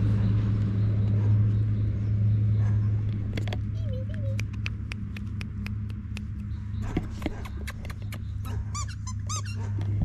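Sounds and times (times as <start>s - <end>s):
dog mouthing clicks: 4.1s - 8.6s
squeaky dog toy squeaks: 8.7s - 9.7s.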